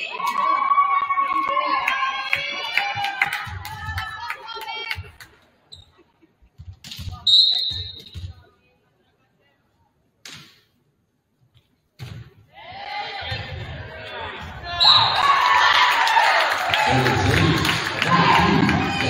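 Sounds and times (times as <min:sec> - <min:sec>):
referee's whistle: 0:07.2 - 0:08.2, 0:14.8 - 0:15.3.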